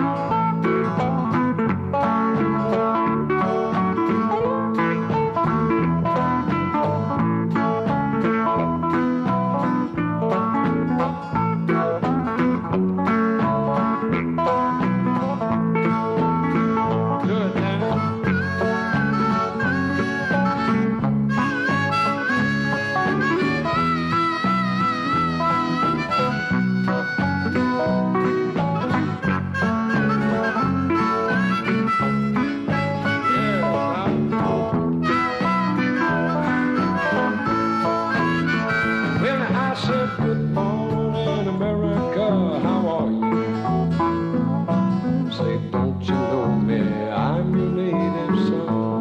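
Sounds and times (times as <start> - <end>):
harmonica lead melody: 0.0 - 48.9
acoustic guitars picking and strumming: 0.0 - 49.0.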